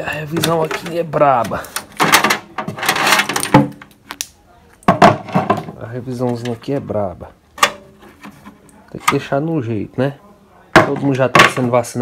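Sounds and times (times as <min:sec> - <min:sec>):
cables rustling: 0:00.0 - 0:09.3.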